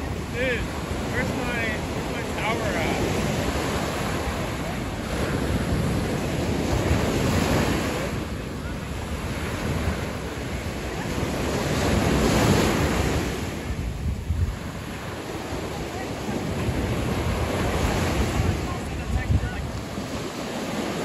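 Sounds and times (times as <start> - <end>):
small surf breaking on beach: 0.0 - 21.0
wind buffeting microphone: 0.0 - 21.0.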